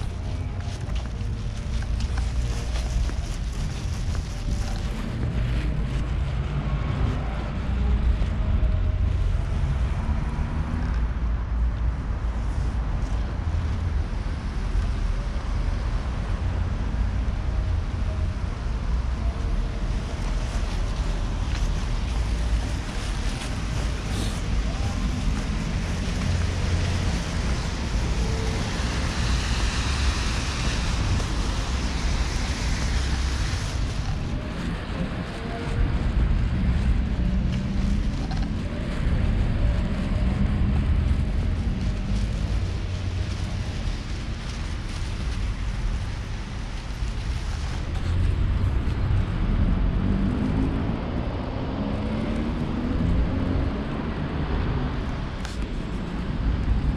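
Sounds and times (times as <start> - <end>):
street traffic: 0.0 - 56.9.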